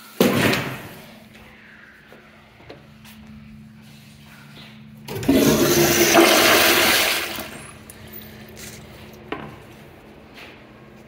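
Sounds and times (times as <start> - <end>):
toilet flushing: 5.1 - 7.8.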